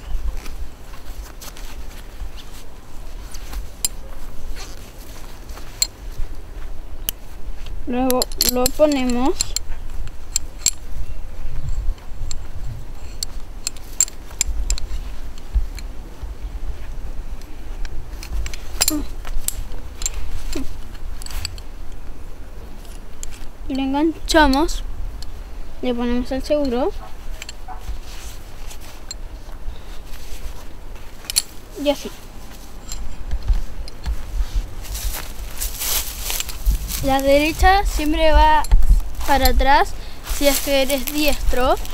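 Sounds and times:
dry leaves crunching underfoot: 0.0s - 8.0s, 26.8s - 41.9s
metal climbing gear clinking: 0.0s - 16.0s, 17.3s - 41.9s.

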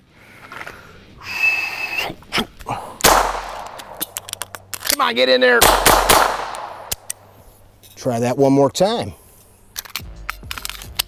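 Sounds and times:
pistol magazine clicks: 3.0s - 5.0s, 5.6s - 7.3s, 9.8s - 11.0s.

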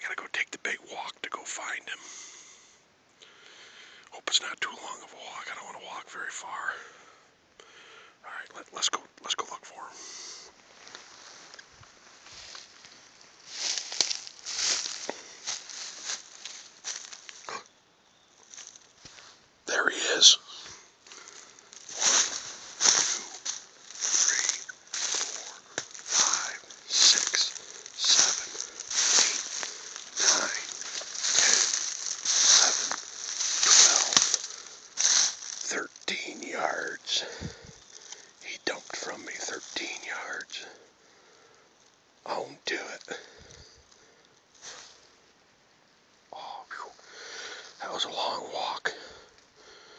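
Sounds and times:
footsteps crunching on dry leaves: 10.6s - 17.7s, 18.4s - 19.4s, 20.0s - 40.5s, 44.6s - 45.1s.

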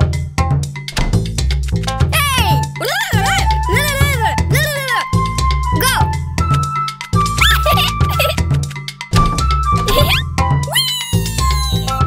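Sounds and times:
upbeat music with bass and percussion: 0.0s - 12.0s
cartoon kitten meowing: 2.1s - 5.1s, 7.4s - 8.4s, 9.9s - 12.0s.

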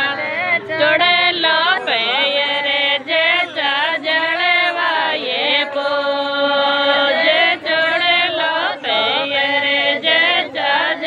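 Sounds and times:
person singing folk song: 0.0s - 11.0s.

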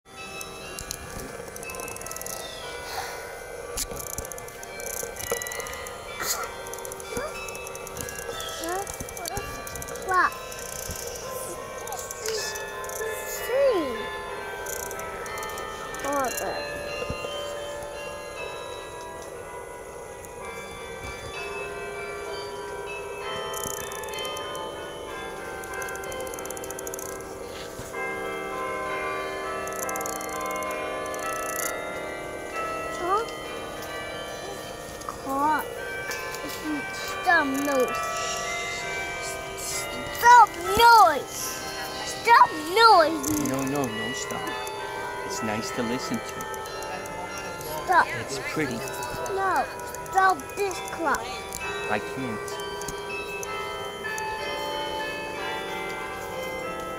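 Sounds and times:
carillon bells playing melody: 0.1s - 56.9s.

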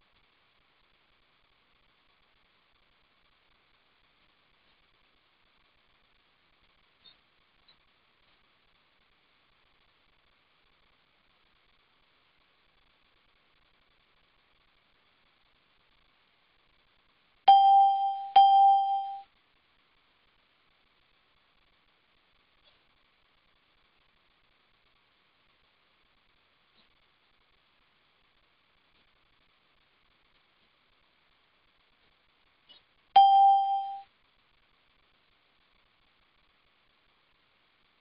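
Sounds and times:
bell-like ding: 17.5s - 19.2s, 33.2s - 34.0s.

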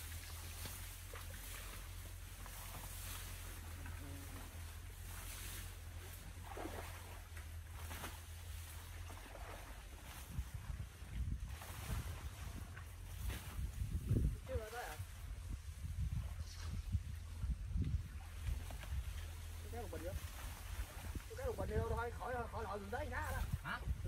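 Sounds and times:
wind gusting on microphone: 9.8s - 24.0s.

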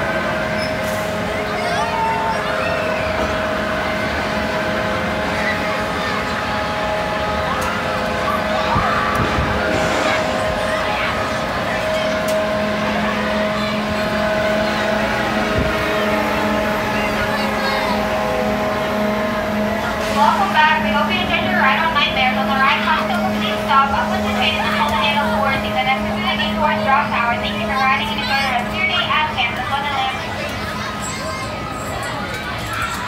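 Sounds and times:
ride machinery hum and whine: 0.0s - 33.0s
lower hum: 3.1s - 29.9s.

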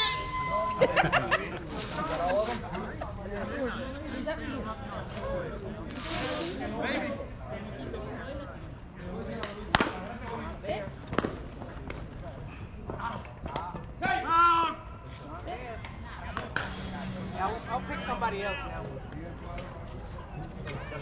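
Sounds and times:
players calling across field: 0.0s - 2.7s, 13.9s - 21.0s.

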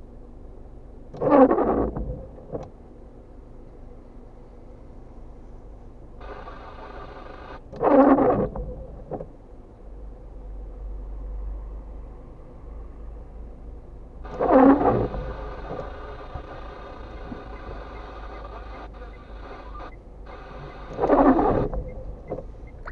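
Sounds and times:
car hum: 0.0s - 22.9s
wipers rubbing across wet glass: 14.3s - 22.4s.

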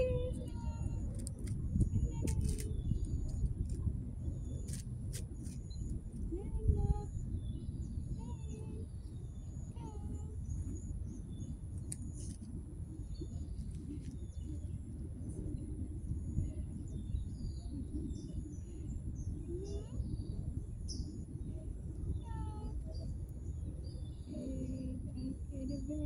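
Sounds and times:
small birds chirping: 0.0s - 15.4s, 16.3s - 26.0s
steady low rumble: 0.0s - 26.0s.

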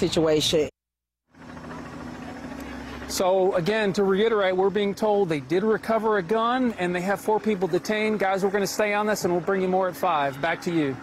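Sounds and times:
low even hum: 1.3s - 11.0s.

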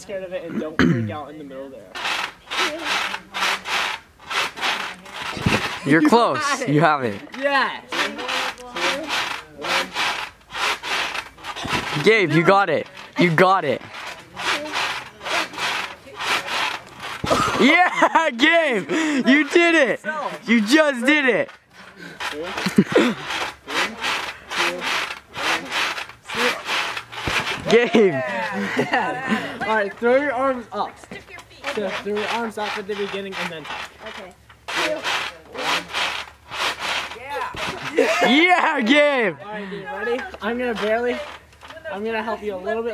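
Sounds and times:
trampoline springs swishing: 2.0s - 30.6s, 31.2s - 39.2s
wheezy breathless laughter: 21.7s - 24.5s.

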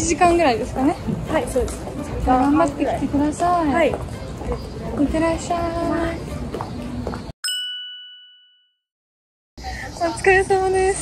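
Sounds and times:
street bustle: 0.0s - 7.4s, 9.6s - 11.0s
bright bell-like ding: 7.4s - 8.9s.

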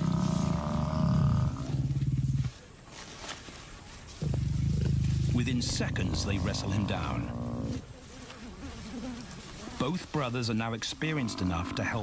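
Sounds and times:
lions growling: 0.0s - 2.6s, 4.2s - 7.9s.

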